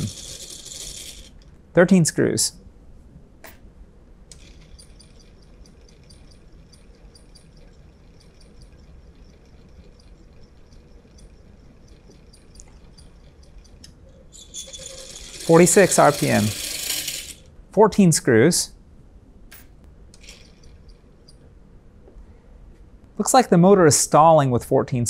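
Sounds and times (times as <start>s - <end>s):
motor brushes ticking: 0.0s - 1.5s, 4.3s - 17.5s
motor low hum: 2.7s - 17.7s.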